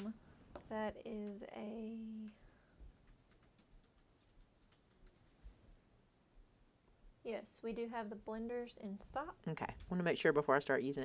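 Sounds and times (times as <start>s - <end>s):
keyboard typing clicks: 3.0s - 5.2s.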